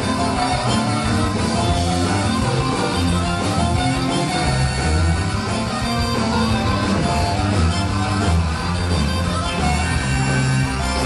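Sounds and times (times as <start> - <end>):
bass guitar: 0.0 - 11.0
distorted electric guitars: 0.0 - 11.0
drum kit: 0.0 - 11.0.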